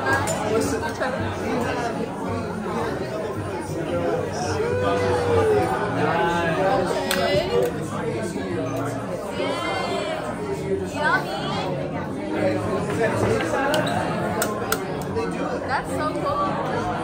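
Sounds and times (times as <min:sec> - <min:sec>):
babble of overlapping conversations: 0:00.0 - 0:17.0.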